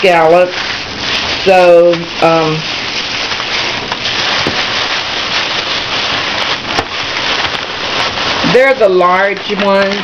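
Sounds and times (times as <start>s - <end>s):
plastic and paper bags rustling: 0.0s - 10.0s.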